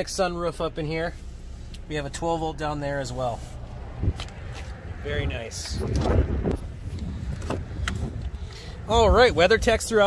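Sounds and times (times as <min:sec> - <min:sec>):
wind rumble on microphone: 0:03.6 - 0:10.0.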